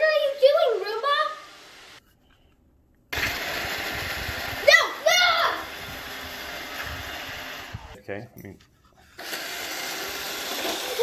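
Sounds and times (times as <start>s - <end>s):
robot vacuum whirring: 9.2s - 11.0s.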